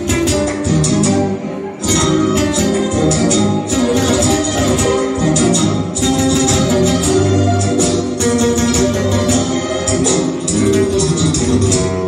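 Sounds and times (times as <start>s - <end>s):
spanish guitar playing: 0.0s - 12.0s.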